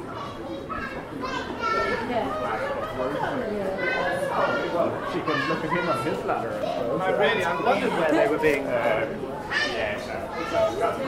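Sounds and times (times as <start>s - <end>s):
children's voices: 0.0s - 8.0s, 9.4s - 11.0s
crowd chatter: 0.0s - 11.0s.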